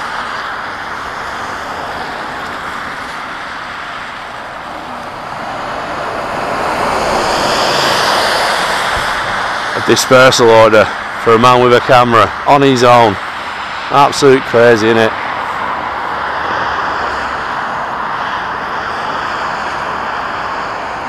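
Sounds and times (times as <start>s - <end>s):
road traffic rushing: 0.0s - 21.0s
vehicle passing close by: 0.0s - 21.0s.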